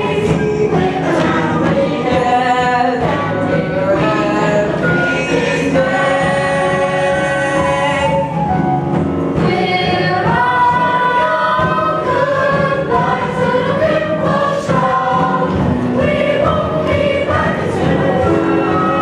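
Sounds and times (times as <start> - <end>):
instrumental accompaniment: 0.0 - 19.0.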